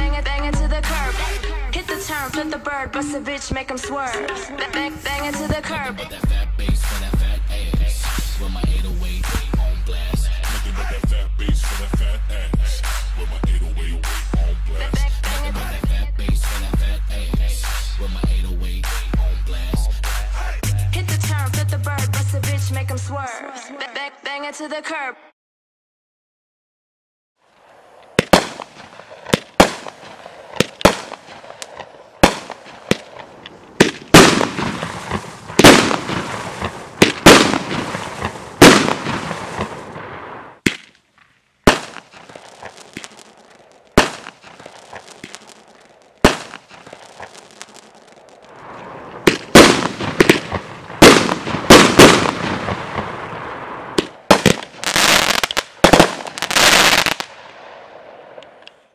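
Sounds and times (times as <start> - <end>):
firework cake bangs: 28.2 - 39.9, 41.7 - 48.0, 49.2 - 53.2, 54.0 - 57.3.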